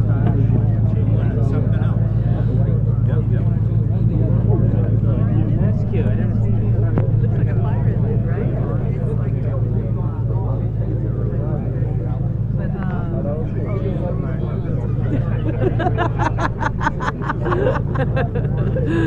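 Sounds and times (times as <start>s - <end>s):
people chattering: 0.0s - 19.0s.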